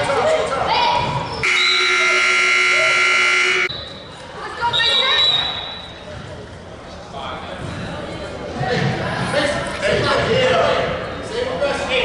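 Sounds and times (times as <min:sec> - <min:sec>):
timer buzzer: 0:01.4 - 0:03.7.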